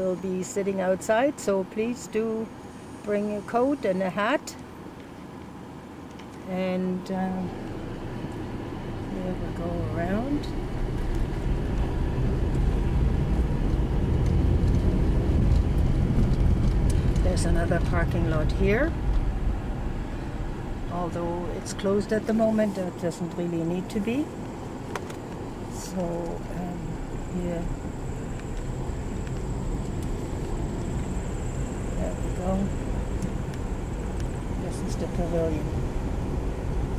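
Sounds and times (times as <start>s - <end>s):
engine and tyres on gravel: 4.2s - 36.9s.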